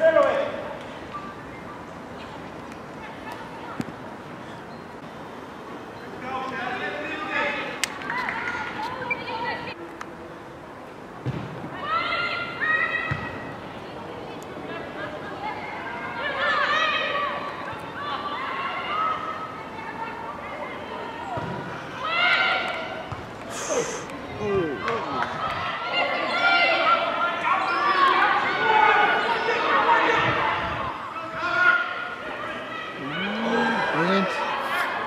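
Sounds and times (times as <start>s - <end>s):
thump: 11.2s - 11.6s
voices shouting and calling out: 11.7s - 35.0s.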